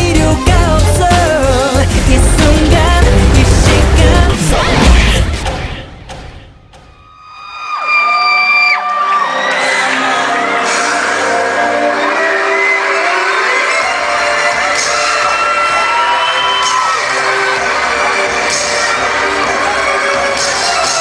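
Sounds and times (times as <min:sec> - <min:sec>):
dance track over sound system: 0:00.0 - 0:05.4
audience screaming cheers: 0:07.1 - 0:11.2, 0:14.5 - 0:17.3.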